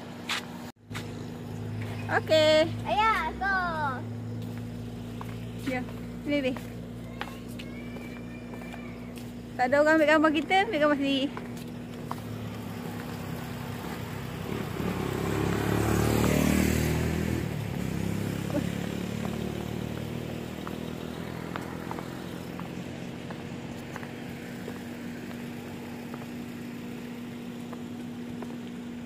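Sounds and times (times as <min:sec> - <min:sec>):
vehicle driving past: 0:11.3 - 0:27.4.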